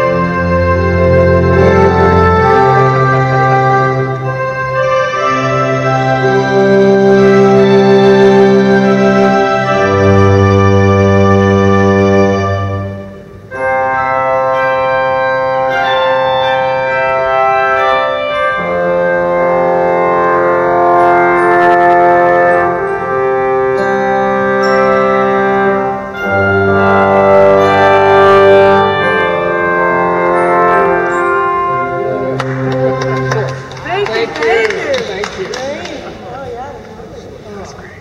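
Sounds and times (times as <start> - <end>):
pipe organ playing chords: 0.0 - 38.0.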